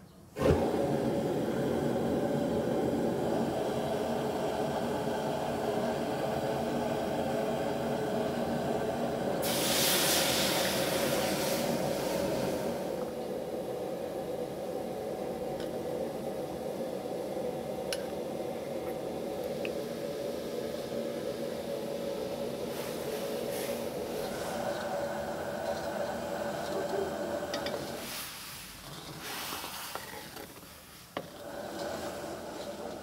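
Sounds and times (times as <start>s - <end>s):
flame burning: 0.4s - 33.0s
water hissing in hot wok: 0.4s - 33.0s.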